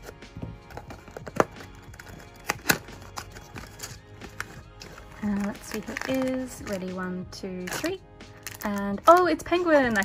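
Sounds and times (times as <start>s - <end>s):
scissors cutting cardboard box: 0.0s - 6.4s
soft background music: 0.0s - 10.0s.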